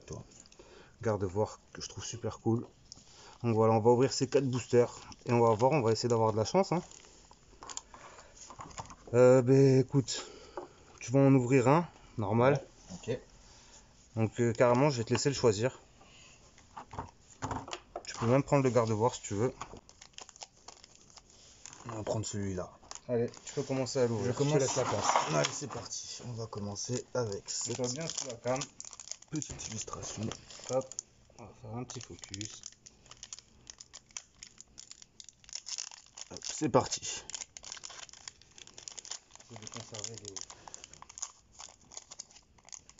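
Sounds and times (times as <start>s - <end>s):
foil packs rustling: 18.1s - 31.0s, 31.7s - 42.9s.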